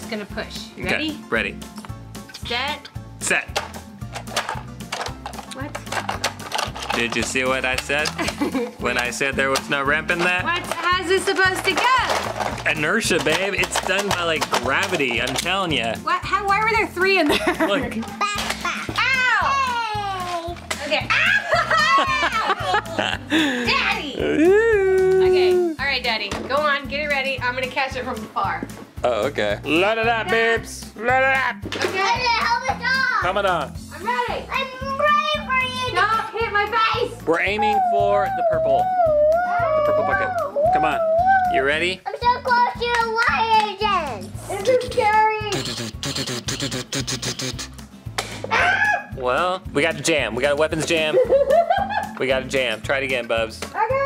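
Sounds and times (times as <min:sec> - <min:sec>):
background music with steady beat: 0:00.0 - 0:54.0
child crying out: 0:24.2 - 0:25.7, 0:37.6 - 0:41.6, 0:48.5 - 0:49.1.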